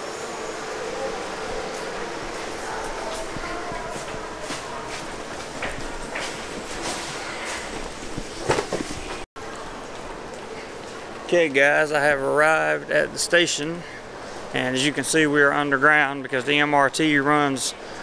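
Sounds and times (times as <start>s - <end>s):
metro train running: 0.0s - 9.2s.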